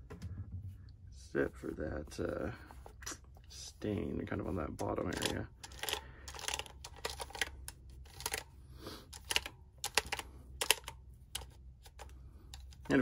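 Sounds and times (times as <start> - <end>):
calculator keys clicking: 5.0 - 8.5, 9.1 - 12.9.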